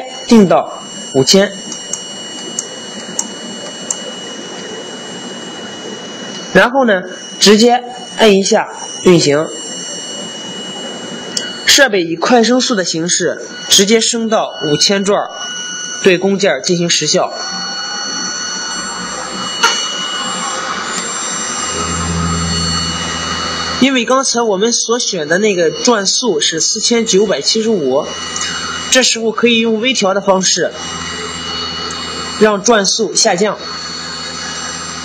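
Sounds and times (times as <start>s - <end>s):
faint high steady tones: 0.0s - 35.0s
motor running with a whine: 0.0s - 35.0s.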